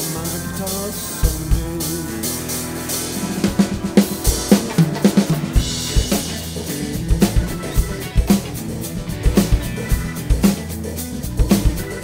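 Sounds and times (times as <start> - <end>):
recorded song playing: 0.0 - 12.0
cymbal ringing: 1.6 - 10.2
bass drum hits: 2.6 - 10.5.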